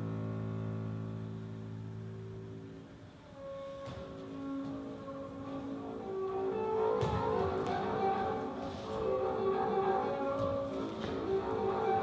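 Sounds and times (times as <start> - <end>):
bowed double bass low note: 0.0 - 2.7.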